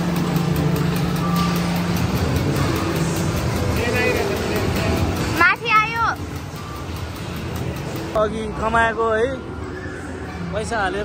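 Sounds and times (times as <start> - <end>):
amusement arcade din: 0.0 - 11.0.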